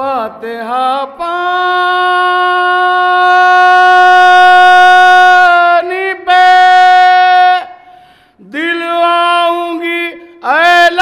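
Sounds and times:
man singing long note: 0.0s - 7.8s.

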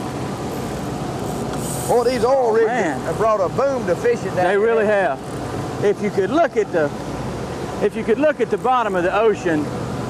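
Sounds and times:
boat engine running: 0.0s - 10.0s.

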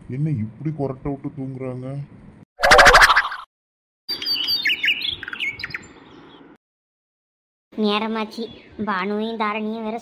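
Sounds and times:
birds chirping: 4.1s - 6.6s.

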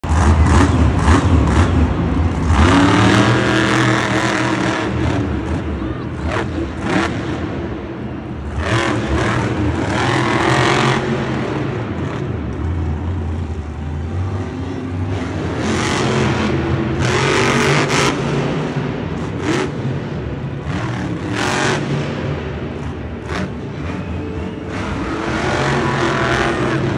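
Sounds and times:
truck engine revving hard: 0.0s - 13.5s, 14.2s - 26.9s.

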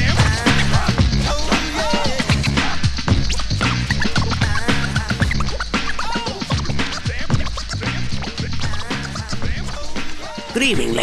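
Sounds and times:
drum and bass beat: 0.0s - 11.0s
vinyl record scratching: 0.0s - 11.0s.

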